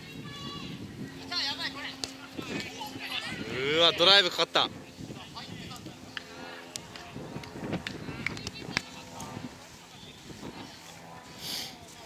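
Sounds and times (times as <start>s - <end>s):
voices calling: 0.0s - 12.0s.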